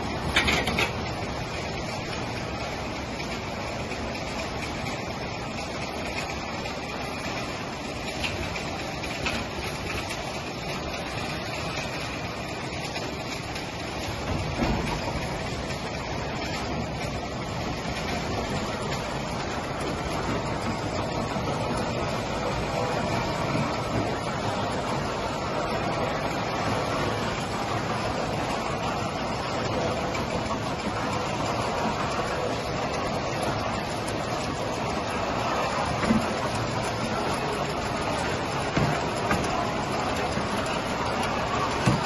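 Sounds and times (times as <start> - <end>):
filling line conveyor running: 0.0 - 42.0.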